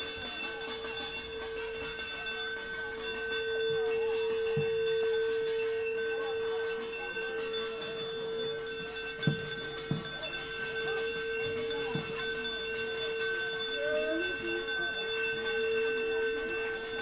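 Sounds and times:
metal bell ringing continuously: 0.0s - 17.0s.

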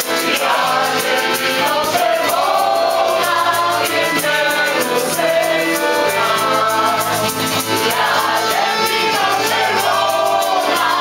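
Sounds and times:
people singing together: 0.0s - 11.0s
rattling percussion beat: 0.0s - 11.0s.

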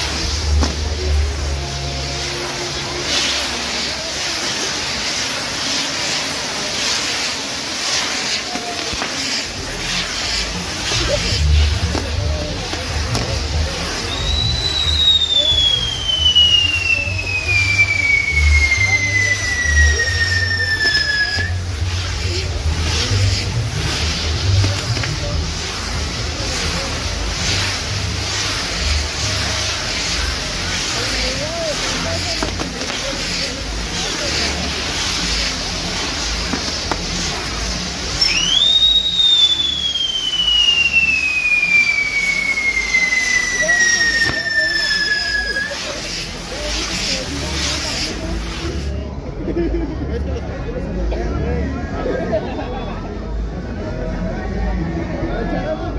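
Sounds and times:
firework whistle shrieking: 0.0s - 49.0s
spark wheels hissing and crackling: 0.0s - 50.6s.

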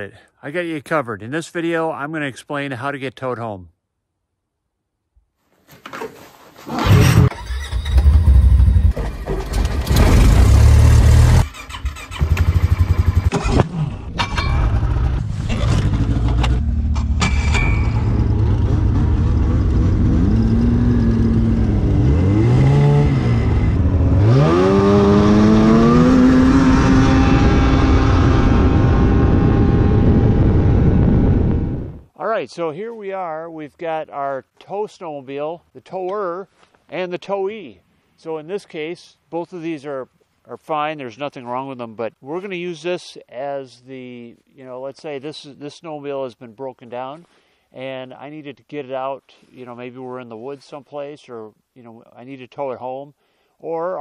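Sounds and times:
snowmobile engines running: 17.9s - 30.3s.

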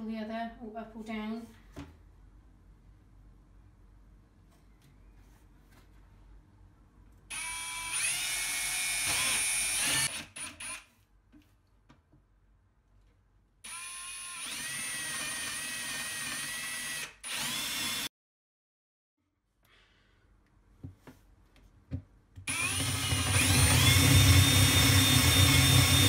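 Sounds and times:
cordless drill boring through wood: 7.3s - 10.9s, 13.7s - 18.1s, 22.5s - 26.0s.

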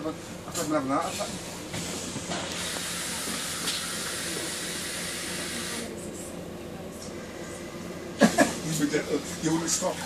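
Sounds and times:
bus engine humming: 0.0s - 10.0s
bus pneumatics hissing air: 1.8s - 5.9s.

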